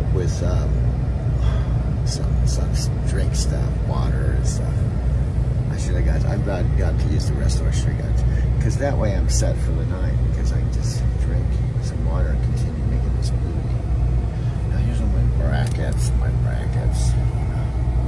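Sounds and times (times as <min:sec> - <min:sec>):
diesel engine rumble: 0:00.0 - 0:18.0.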